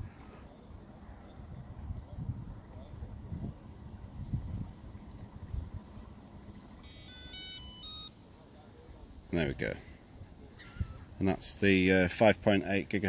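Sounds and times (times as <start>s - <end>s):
gusty wind rumble on microphone: 1.3s - 6.4s
electronic jingle of beeps: 6.8s - 8.2s.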